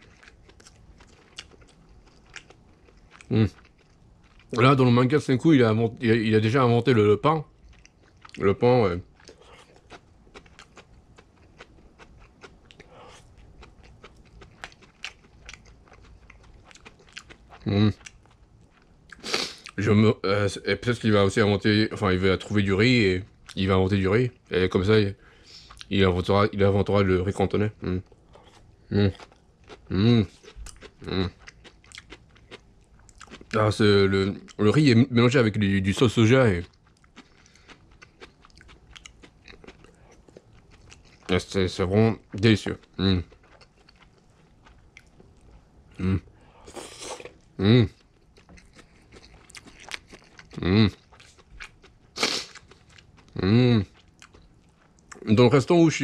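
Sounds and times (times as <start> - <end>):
person chewing food: 0.0 - 4.6, 7.5 - 19.8, 25.2 - 25.9, 28.0 - 33.6, 36.6 - 55.3.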